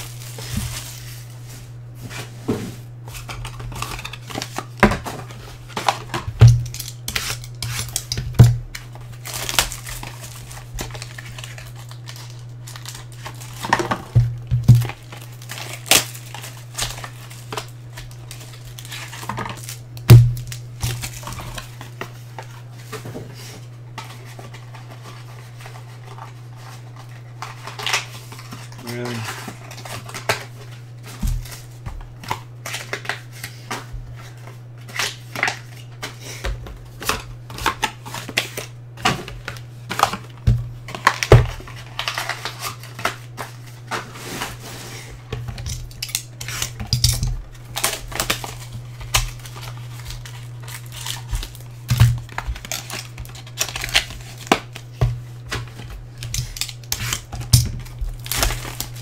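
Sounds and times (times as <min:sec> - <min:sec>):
low electrical hum: 0:00.0 - 0:59.0.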